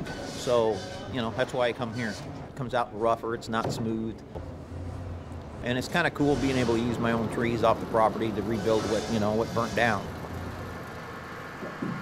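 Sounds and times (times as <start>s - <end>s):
forklift engine rumbling: 3.8s - 12.0s.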